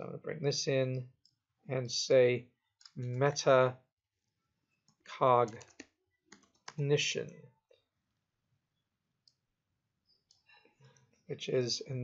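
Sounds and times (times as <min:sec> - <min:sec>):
man speaking: 0:00.0 - 0:01.1, 0:01.7 - 0:03.8, 0:05.1 - 0:05.7, 0:06.8 - 0:07.5, 0:11.3 - 0:12.0
keyboard keys clicking: 0:05.4 - 0:06.8.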